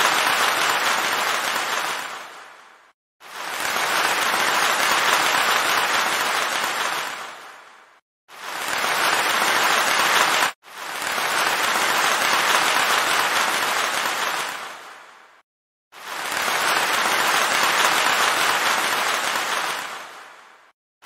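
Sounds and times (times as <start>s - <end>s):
crowd applause: 0.0s - 2.4s, 3.4s - 7.5s, 8.4s - 14.8s, 16.1s - 20.2s.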